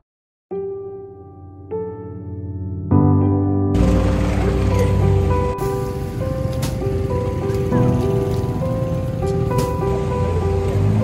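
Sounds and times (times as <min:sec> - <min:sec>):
slow melody of held notes: 0:00.6 - 0:11.0.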